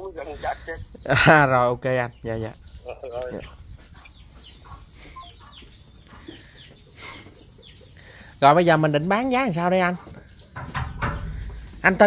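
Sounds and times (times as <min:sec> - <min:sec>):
faint bird chirping: 0:00.0 - 0:12.0.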